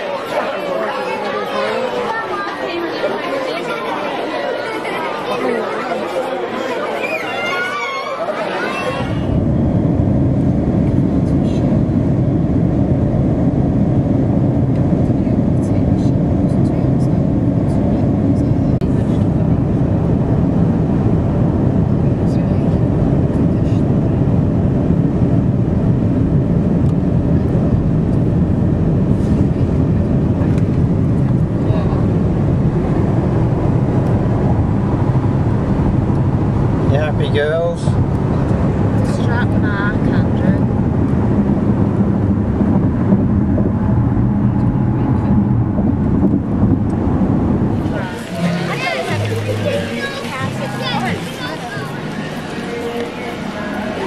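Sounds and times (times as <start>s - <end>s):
car road and engine noise: 9.2s - 54.0s.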